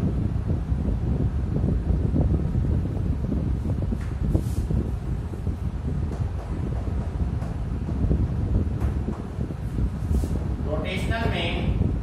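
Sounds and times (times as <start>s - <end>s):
wind buffeting microphone: 0.0s - 12.0s.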